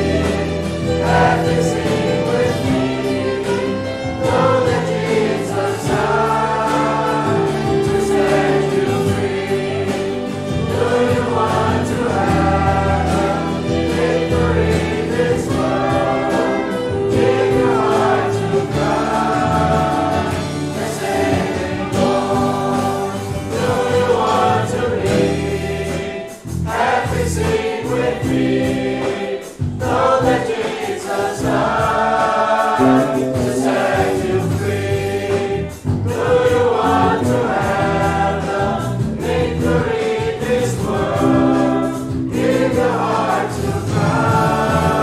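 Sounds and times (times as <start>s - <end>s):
group singing gospel hymn: 0.0s - 45.0s
instrumental accompaniment with bass: 0.0s - 45.0s.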